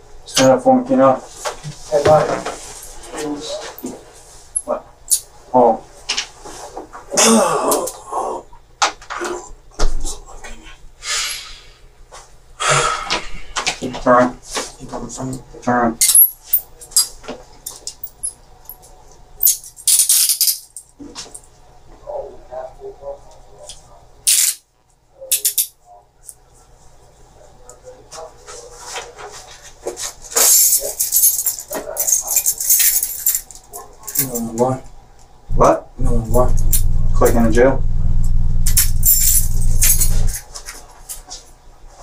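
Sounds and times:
man muttering or humming: 0:07.1 - 0:08.6.

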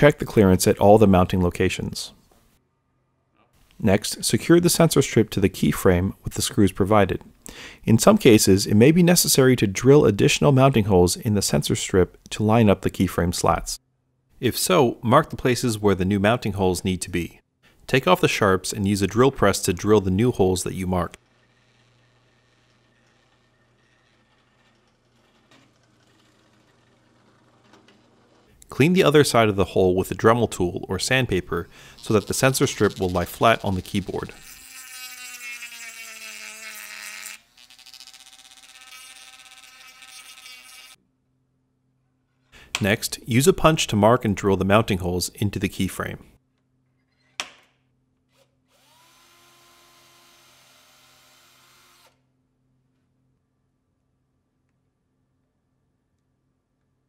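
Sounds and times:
cordless drill drilling wood: 0:34.4 - 0:41.0, 0:48.3 - 0:52.2.

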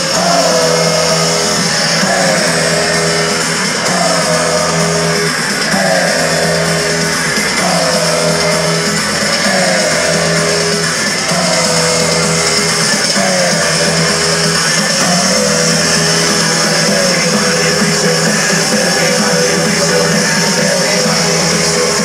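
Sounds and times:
repeating falling synth phrase: 0:00.0 - 0:21.2
electronic dance music: 0:00.0 - 0:22.0
steady bass line: 0:00.0 - 0:22.0.

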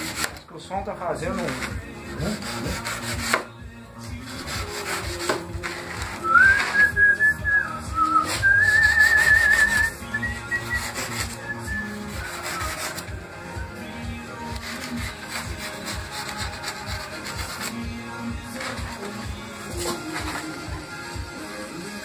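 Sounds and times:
hand tool scraping styrofoam: 0:00.0 - 0:00.4, 0:01.2 - 0:07.0, 0:07.9 - 0:13.2, 0:14.2 - 0:20.9
person whistling: 0:06.2 - 0:12.9.

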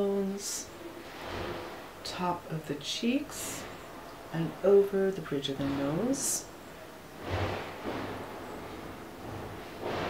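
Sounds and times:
rushing noise: 0:07.1 - 0:10.0.

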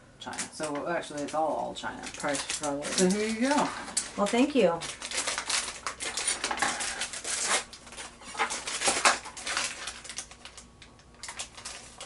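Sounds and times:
plastic packets crinkling: 0:00.3 - 0:12.0.

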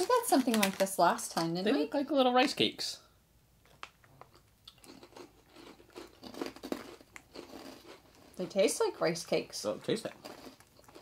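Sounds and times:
people chewing crunchy rice crackers: 0:03.6 - 0:08.8, 0:09.6 - 0:11.0.

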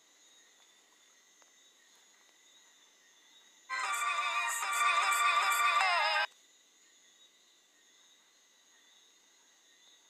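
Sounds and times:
faint steady high tone: 0:03.7 - 0:06.3
music with sung vocal: 0:03.7 - 0:06.3.

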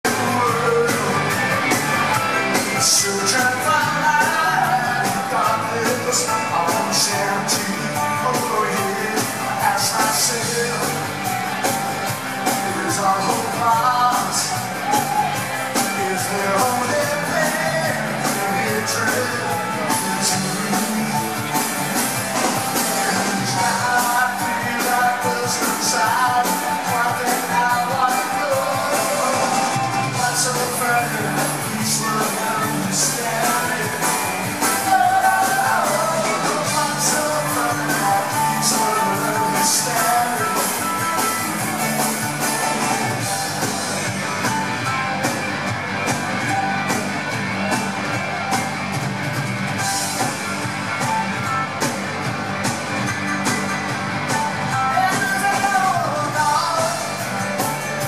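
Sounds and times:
man singing lead vocal: 0:00.0 - 0:43.7, 0:54.7 - 0:58.0
drums: 0:00.0 - 0:58.0
electric guitar: 0:00.0 - 0:58.0.

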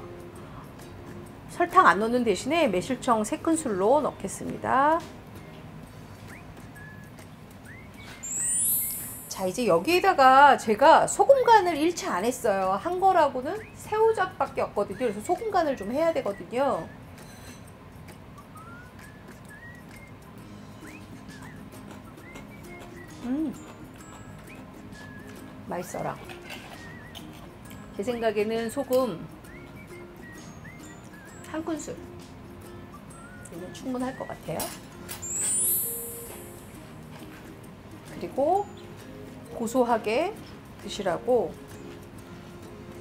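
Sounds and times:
soft background music: 0:00.0 - 0:43.0
whistled melody: 0:05.4 - 0:09.5, 0:13.4 - 0:17.6, 0:18.3 - 0:36.9
electronic swish rising in pitch: 0:08.2 - 0:09.3.

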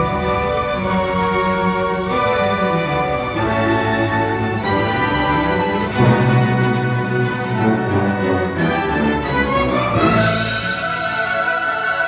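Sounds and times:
orchestra playing held notes: 0:00.0 - 0:12.0.

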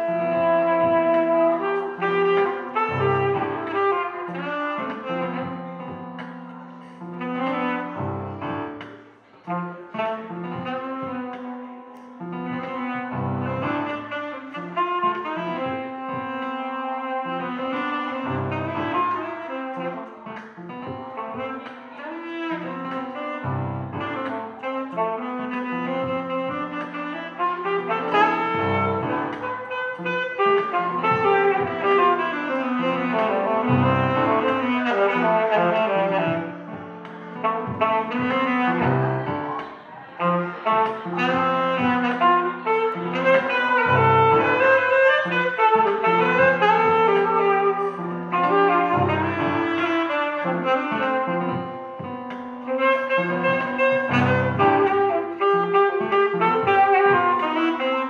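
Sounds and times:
alto saxophone jazz melody: 0:00.0 - 0:58.0.

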